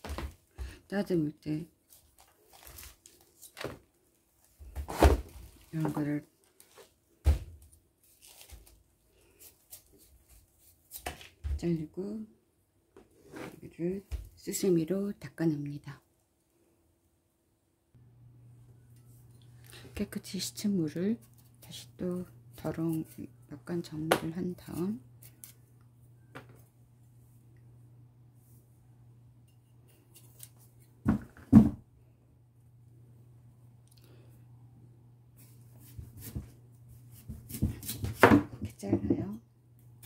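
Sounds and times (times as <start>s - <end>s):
knife scraping radish skin: 30.0s - 30.7s.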